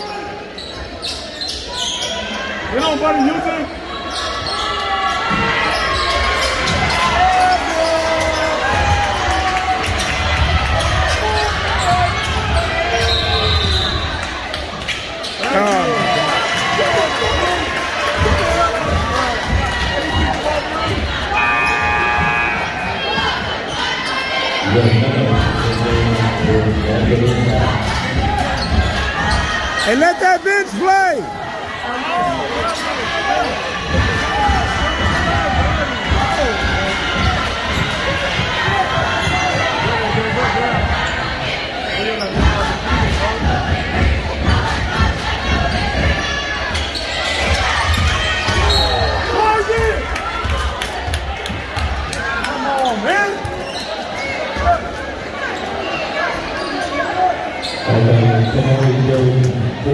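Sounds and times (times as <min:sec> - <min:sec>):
sneakers squeaking: 0:00.0 - 0:16.7, 0:18.2 - 0:30.2, 0:32.0 - 0:43.2, 0:45.1 - 0:50.7, 0:52.8 - 0:58.8
crowd chatter: 0:00.0 - 0:59.9.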